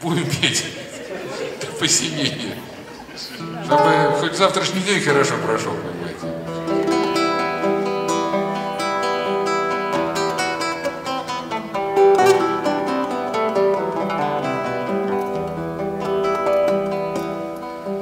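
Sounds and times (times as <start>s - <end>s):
classical guitars playing: 2.6s - 18.0s.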